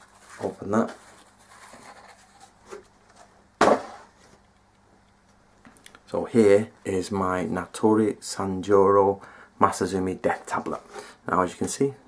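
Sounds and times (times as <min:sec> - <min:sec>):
tissue paper rustling: 0:00.0 - 0:03.3.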